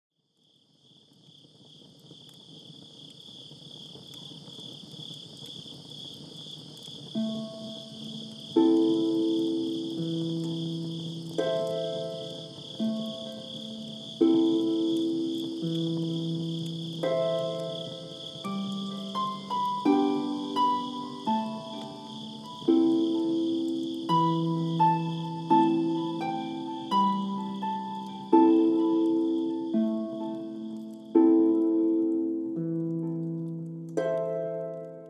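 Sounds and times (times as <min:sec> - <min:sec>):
crickets chirping: 0:00.2 - 0:35.0.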